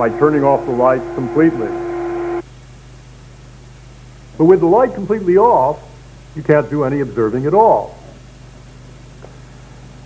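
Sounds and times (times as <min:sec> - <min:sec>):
steady electronic tone: 0:00.0 - 0:02.4
low mains hum: 0:00.0 - 0:10.0
tape hiss: 0:00.0 - 0:10.0.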